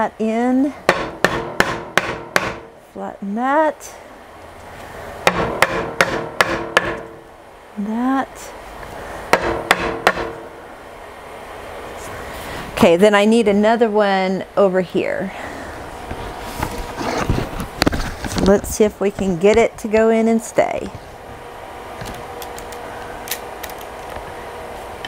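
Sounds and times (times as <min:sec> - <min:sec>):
hammer striking nails: 0:00.9 - 0:02.7, 0:05.3 - 0:07.2, 0:09.3 - 0:10.5
rustling and scraping handling noise: 0:16.0 - 0:19.7.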